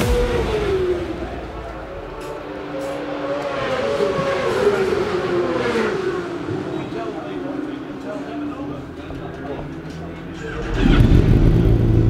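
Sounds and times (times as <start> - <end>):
racing motorcycle engines: 0.0 - 12.0.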